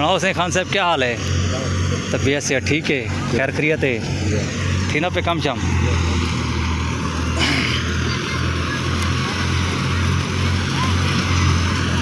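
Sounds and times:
thresher mechanical drone: 0.0 - 12.0.

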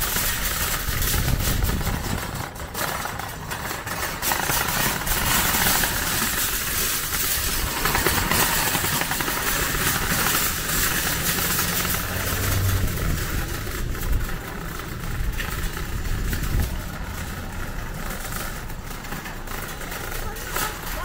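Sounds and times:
shopping cart rolling on pavement: 0.0 - 21.0.

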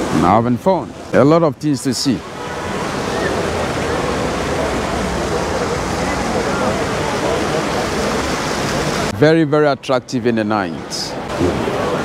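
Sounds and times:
faint distant voices: 0.0 - 12.0
steady rushing noise: 2.1 - 9.3.

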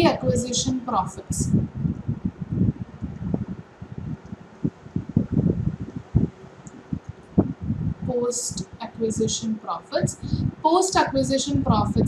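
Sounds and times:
microphone handling rustles: 1.5 - 8.0
stylus clicks: 6.6 - 7.4.

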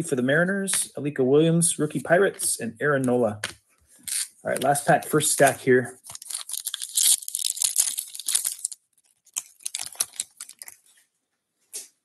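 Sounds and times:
card pack wrapper tearing: 4.0 - 4.8, 5.4 - 10.8.

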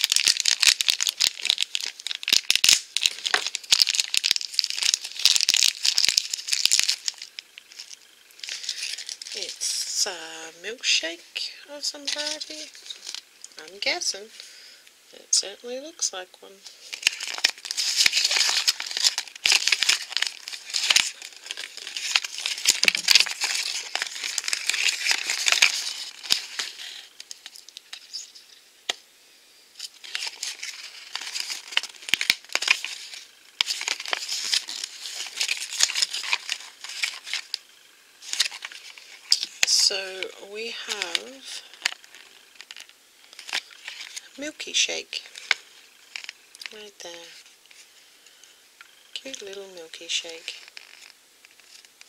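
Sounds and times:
paper and packaging crinkling: 0.0 - 9.8, 11.8 - 14.4, 16.7 - 28.4, 29.8 - 48.0, 49.1 - 52.0.

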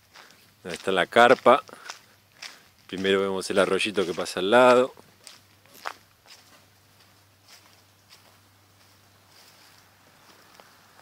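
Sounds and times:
footsteps through grass: 0.0 - 11.0.

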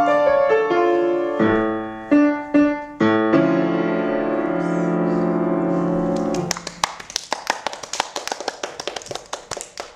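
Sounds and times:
people clapping: 6.2 - 9.9.

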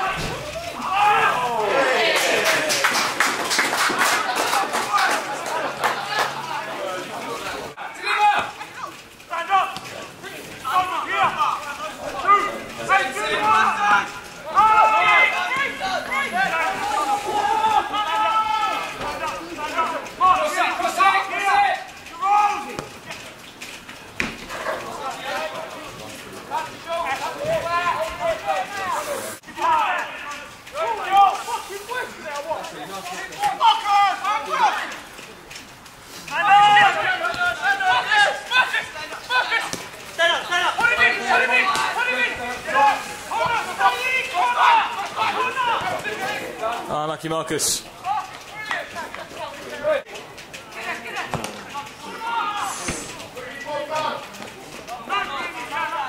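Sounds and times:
people talking: 0.0 - 56.0.

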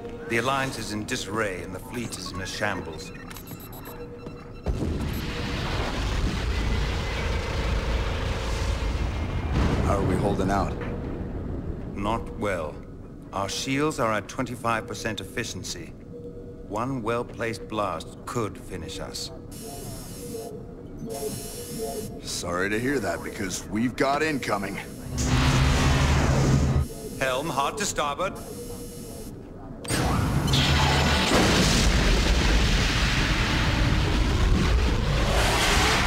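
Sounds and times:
music: 0.0 - 5.4
faint music: 0.0 - 6.4, 9.5 - 25.5, 26.4 - 30.2
boom with low rumble: 4.7 - 12.0.

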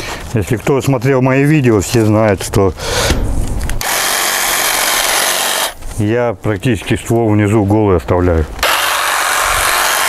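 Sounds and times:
hedge trimmer running: 3.8 - 5.8, 8.6 - 10.0.

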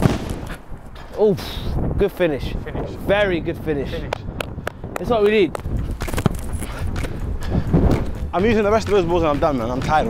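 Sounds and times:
footsteps: 4.4 - 10.0.

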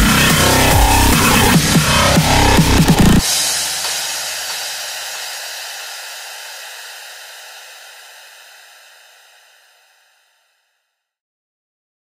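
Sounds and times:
dubstep beat: 0.0 - 9.3
noisy reverb tail: 0.0 - 10.4.

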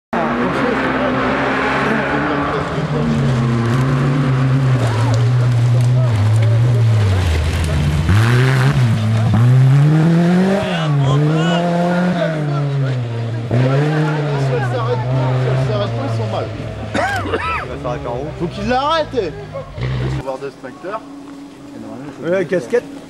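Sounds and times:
rally car engine revving: 0.2 - 23.0.

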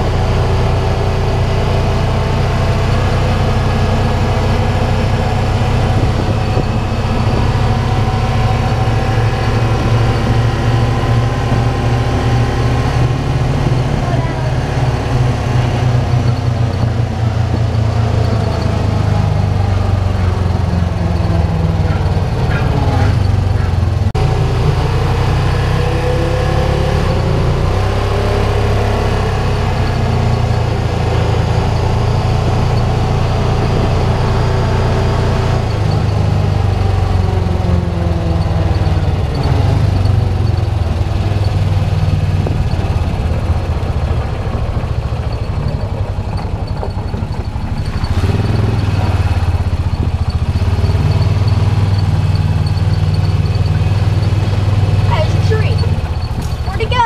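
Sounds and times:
utility vehicle engine running: 0.0 - 57.0.

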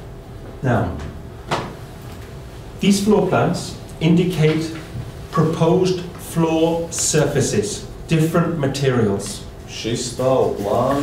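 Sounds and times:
man speaking: 0.6 - 1.1, 2.8 - 11.0.

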